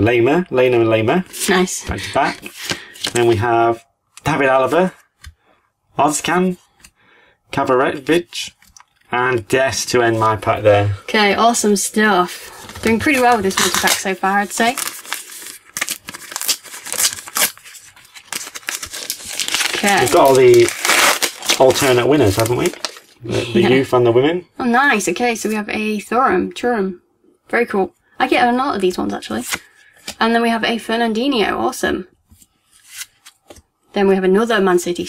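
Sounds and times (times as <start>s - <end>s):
paper stickers rustling: 12.5s - 23.2s
wrapper being torn open: 13.4s - 23.2s.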